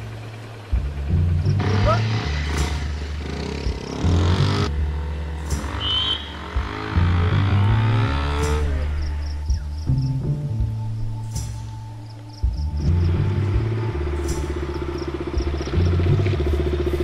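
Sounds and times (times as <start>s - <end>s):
film music with heavy bass: 0.0s - 17.0s
motorcycle engine running: 0.0s - 17.0s.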